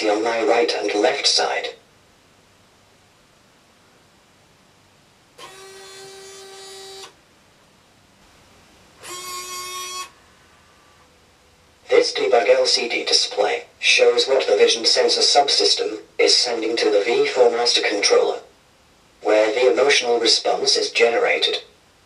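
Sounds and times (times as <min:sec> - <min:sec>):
robot servo motors whining: 0:05.4 - 0:07.1, 0:09.0 - 0:11.1.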